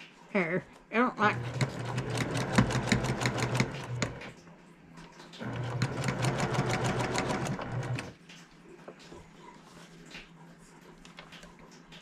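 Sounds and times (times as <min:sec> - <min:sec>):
electric sewing machine stitching: 0:01.2 - 0:04.4, 0:05.4 - 0:08.2.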